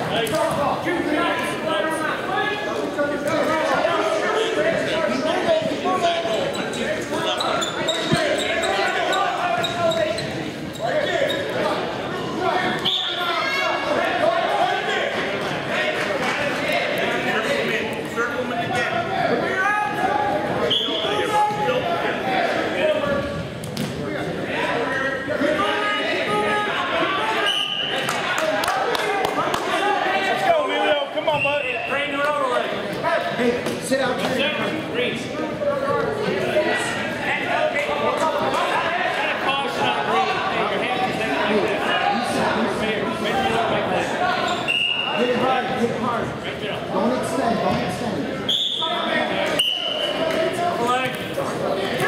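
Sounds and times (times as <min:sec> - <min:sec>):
spectators and coaches shouting: 0:00.0 - 0:23.2, 0:24.1 - 0:32.7.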